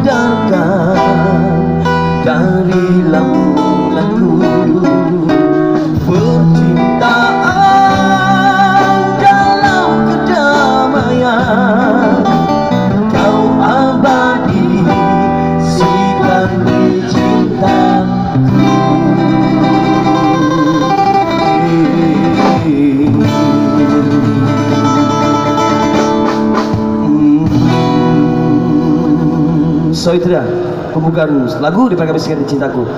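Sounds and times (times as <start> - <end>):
people singing into microphones: 0.0 - 31.0
plucked guitar: 0.0 - 31.6.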